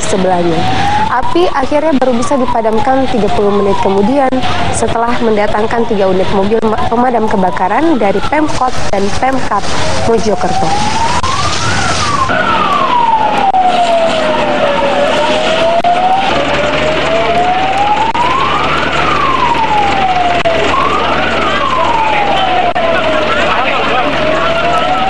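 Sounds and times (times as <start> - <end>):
emergency vehicle siren wailing: 0.0 - 25.0
crowd chatter: 18.6 - 25.0.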